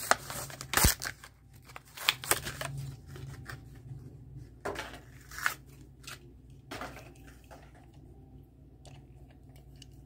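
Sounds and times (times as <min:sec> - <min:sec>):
crackling of plastic and card: 0:00.0 - 0:03.9, 0:04.8 - 0:06.3.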